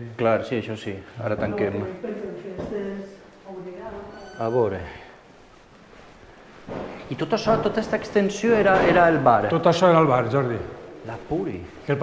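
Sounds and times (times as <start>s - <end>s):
man talking: 0.0s - 1.9s, 4.4s - 5.2s, 7.1s - 12.0s
faint background hiss: 0.0s - 12.0s.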